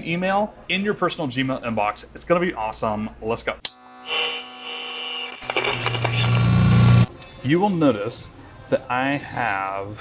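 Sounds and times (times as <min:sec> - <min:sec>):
electric neon buzz: 0:03.7 - 0:07.1
low electrical hum: 0:04.2 - 0:07.1.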